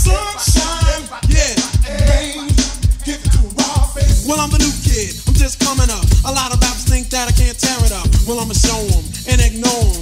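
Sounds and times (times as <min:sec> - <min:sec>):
heavy kick drum: 0:00.0 - 0:10.0
hip hop vocal over drum beat: 0:00.0 - 0:10.0.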